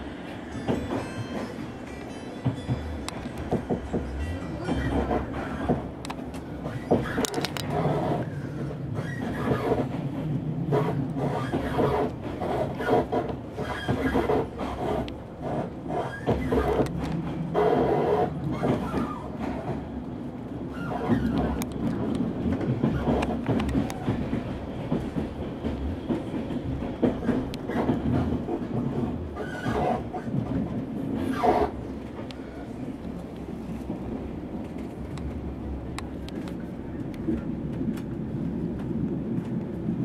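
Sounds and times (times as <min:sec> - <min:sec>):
rail clicks and clatter: 0:00.0 - 0:40.0
train wheels rumbling on track: 0:00.0 - 0:40.0.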